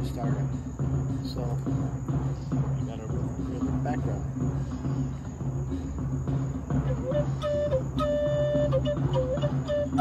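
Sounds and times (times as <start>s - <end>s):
drum circle drumming: 0.0s - 10.0s
wooden flute long notes: 6.8s - 10.0s.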